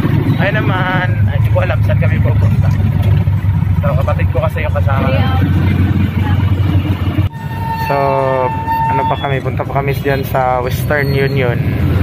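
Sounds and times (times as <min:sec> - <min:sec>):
engine rumbling: 0:00.0 - 0:12.0
high single-pitched tone: 0:07.3 - 0:10.4.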